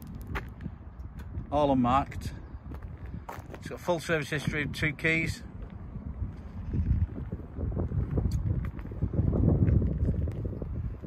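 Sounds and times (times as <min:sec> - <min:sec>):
wind buffeting the microphone: 0:00.0 - 0:11.0.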